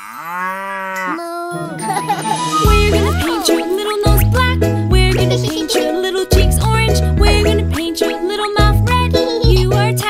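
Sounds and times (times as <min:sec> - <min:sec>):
children's song music: 0:01.5 - 0:10.0.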